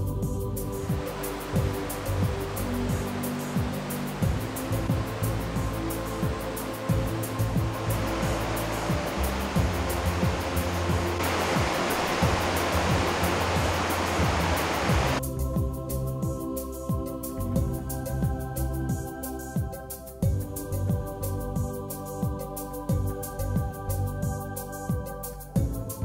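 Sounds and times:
background music: 0.0 - 26.0
floodwater rushing in a creek: 0.8 - 15.2.

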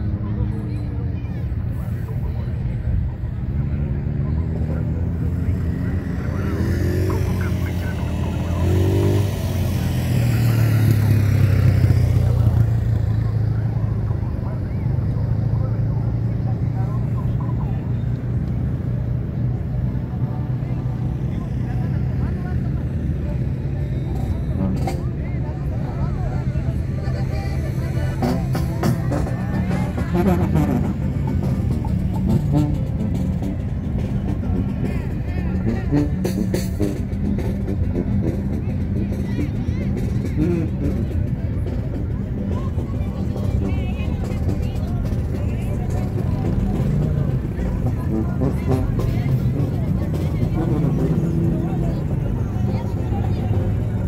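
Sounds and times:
vehicle engines rumbling: 0.0 - 54.0
voices: 0.0 - 54.0.

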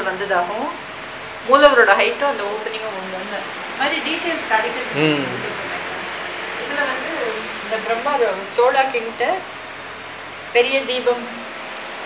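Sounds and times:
person speaking: 4.9 - 5.7
background hiss: 4.9 - 5.8.

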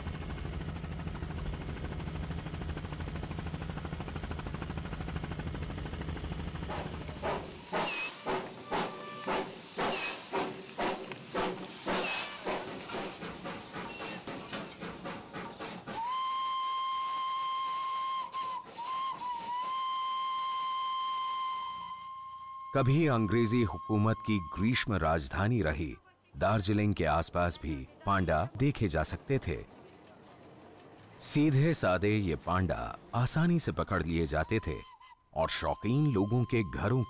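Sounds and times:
steam locomotive chuffing: 6.4 - 21.9
steam whistle: 7.5 - 10.5, 12.0 - 12.6, 15.9 - 24.7, 34.6 - 37.0.

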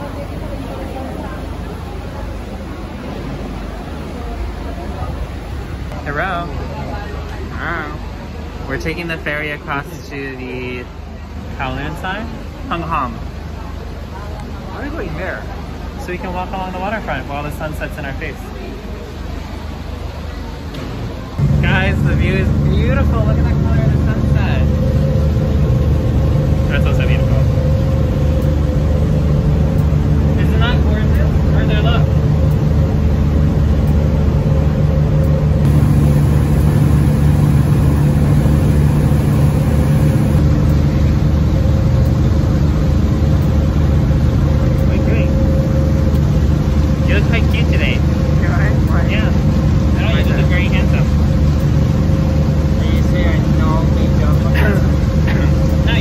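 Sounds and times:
ferry engine droning: 21.3 - 56.0.

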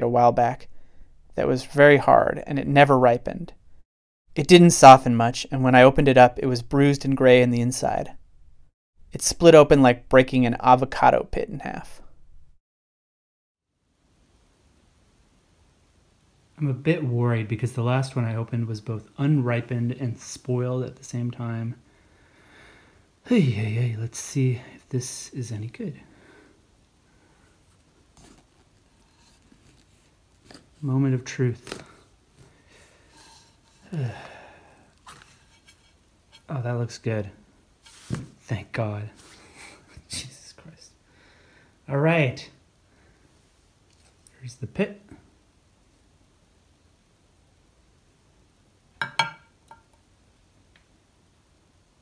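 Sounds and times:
pit knocking on plate: 49.0 - 49.8.

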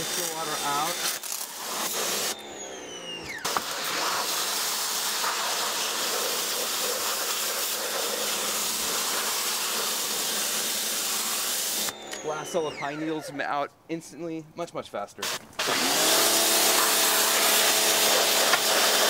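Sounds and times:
pressure washer spraying water: 0.0 - 2.4, 3.4 - 12.4, 15.2 - 19.0.

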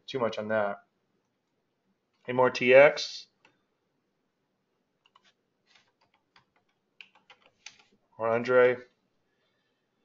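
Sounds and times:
computer keyboard keystrokes: 5.0 - 7.9.

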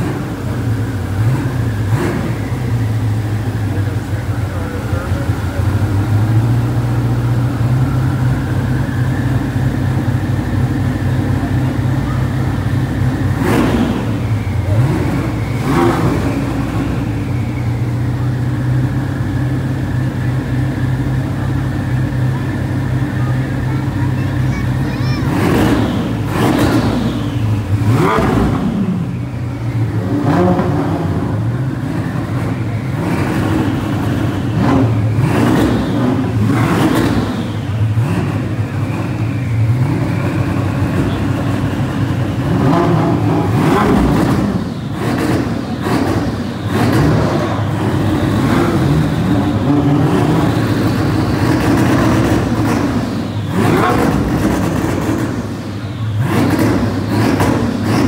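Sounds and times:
supercar engines revving: 0.0 - 58.0.

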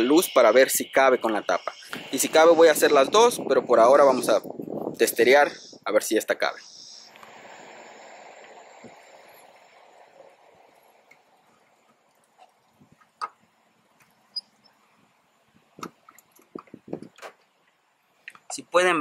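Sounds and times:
faint hiss: 0.0 - 19.0.

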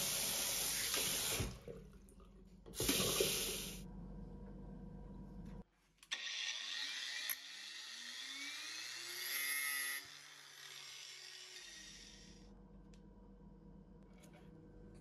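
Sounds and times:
small electric motor whirring: 6.1 - 12.5.

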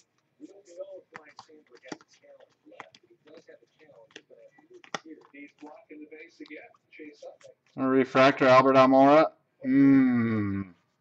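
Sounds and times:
cards flipping with clicks: 1.1 - 5.7.

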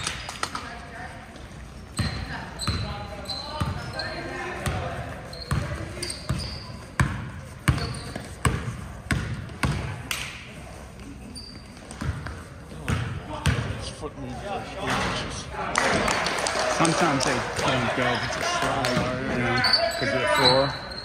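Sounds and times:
sneaker squeaks: 1.8 - 10.4, 11.0 - 13.8, 18.9 - 21.0
basketball dribbling on gym floor: 4.6 - 10.0, 11.9 - 13.7
voices talking: 13.3 - 21.0.

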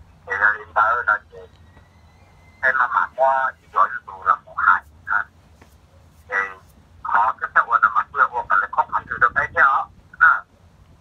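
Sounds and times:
person talking: 2.6 - 5.3.

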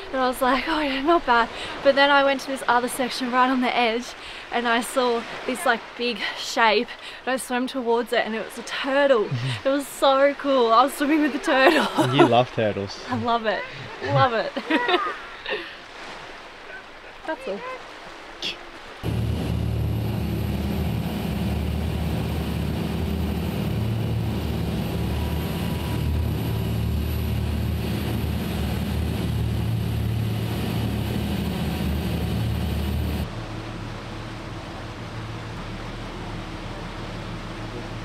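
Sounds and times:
boat engine drone: 11.0 - 14.6, 19.0 - 38.0.

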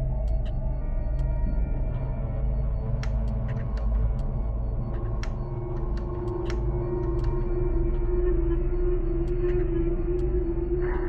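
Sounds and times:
dark music drone: 0.0 - 11.0.

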